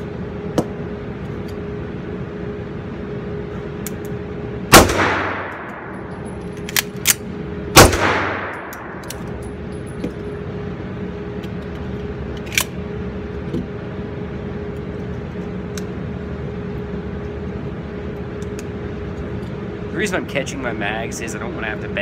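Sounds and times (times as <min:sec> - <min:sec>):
ventilation hum: 0:00.0 - 0:22.0
pistol shots indoors: 0:04.7 - 0:09.6.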